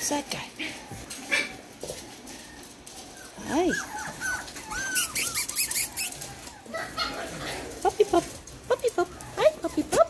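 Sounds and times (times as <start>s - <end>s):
puppy whimpering: 0.0s - 10.0s.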